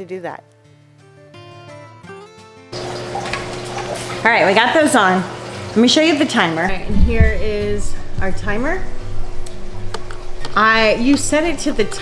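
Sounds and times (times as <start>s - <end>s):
acoustic guitar music: 0.4s - 12.0s
pump humming: 2.8s - 11.9s
trickling water: 2.8s - 12.0s.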